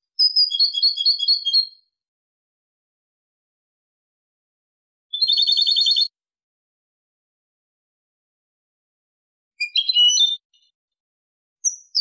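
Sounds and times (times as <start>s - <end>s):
goldfinch trilling song: 0.2s - 1.8s, 9.6s - 10.7s, 11.6s - 12.0s.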